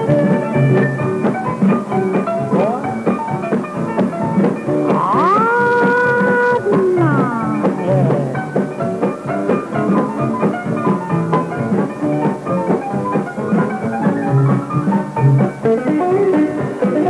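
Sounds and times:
western swing band playing: 0.0 - 17.0
fiddle and guitar notes: 4.8 - 8.7.

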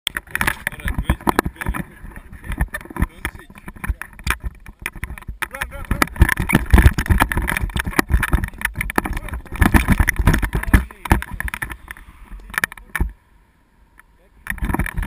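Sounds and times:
wind buffeting microphone: 0.1 - 13.2.

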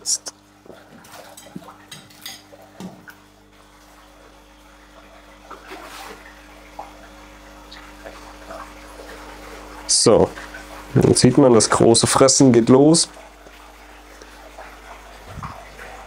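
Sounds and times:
steady low hum: 0.0 - 16.0
fish splashing at water surface: 0.7 - 10.9.

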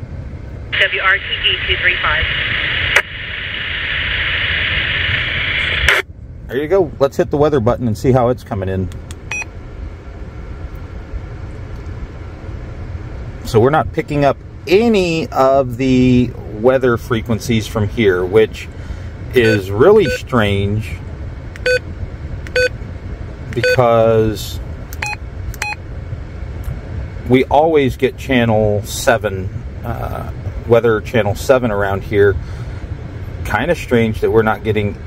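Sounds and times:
low rumble of car cabin: 0.0 - 35.0
short electronic key beeps: 9.3 - 9.5, 21.6 - 21.8, 22.5 - 22.7, 23.6 - 23.8, 25.0 - 25.8
radio key beep: 19.4 - 20.3, 21.6 - 21.8, 22.5 - 22.7, 23.6 - 23.8.

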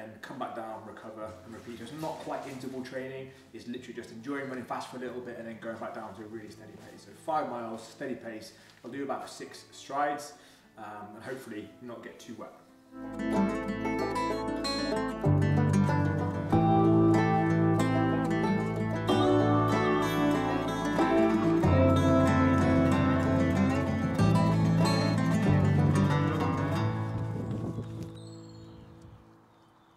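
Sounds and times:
plucked string music with bass: 13.0 - 28.2.

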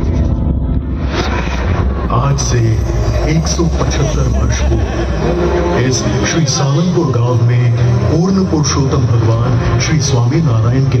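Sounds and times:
crowd voices: 0.0 - 11.0
low rumble from loudspeakers: 0.0 - 11.0.

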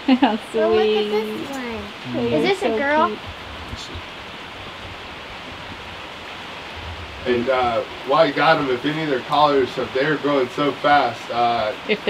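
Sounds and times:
steady hiss: 0.2 - 12.0
faint low bumps: 1.8 - 11.0.

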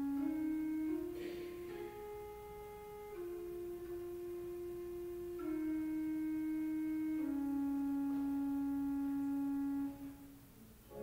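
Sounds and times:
church organ held notes: 0.0 - 11.0.

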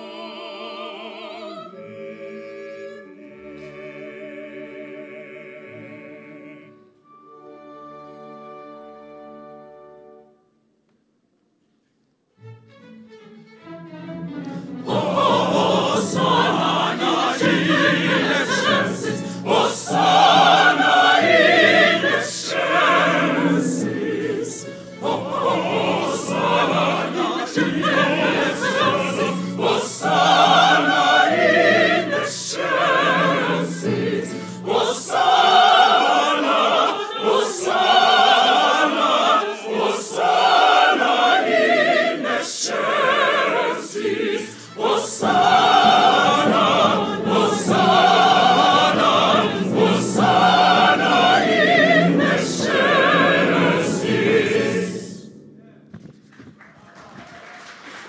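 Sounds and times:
choir singing: 0.0 - 10.2, 13.9 - 55.9
orchestral accompaniment: 1.7 - 10.6, 12.3 - 56.3.

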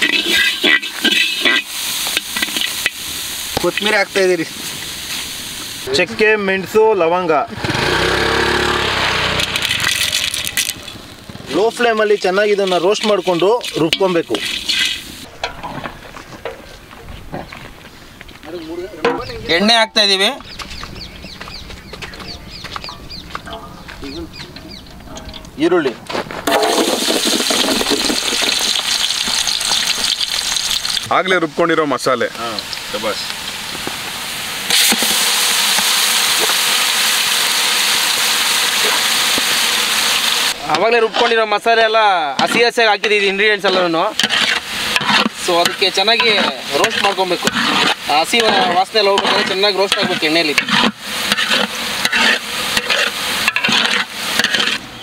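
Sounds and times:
spatula scraping metal pan: 0.0 - 3.0, 9.0 - 15.8, 40.7 - 54.8
food sizzling in a pan: 0.0 - 6.4, 7.5 - 15.3, 26.5 - 54.8.

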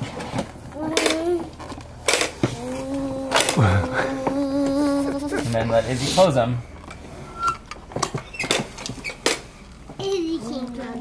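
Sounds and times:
small child's voice: 0.8 - 1.8, 2.5 - 5.4, 10.0 - 11.0
plastic toy lids clicking shut: 3.3 - 3.6.

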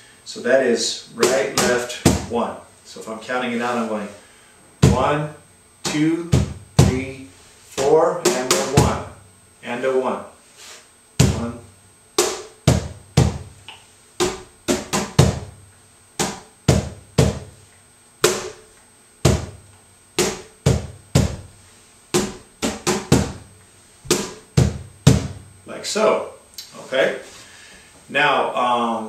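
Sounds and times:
cajon played by hand: 1.2 - 2.3, 8.3 - 9.0, 12.2 - 13.6, 14.2 - 15.6, 16.2 - 17.6, 18.2 - 18.6, 19.2 - 19.6, 20.2 - 21.5, 22.1 - 23.4, 24.1 - 25.4.

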